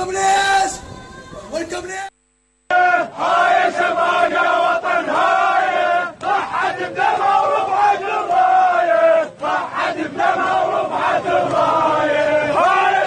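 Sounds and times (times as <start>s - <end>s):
crowd chanting in unison: 2.7s - 13.0s.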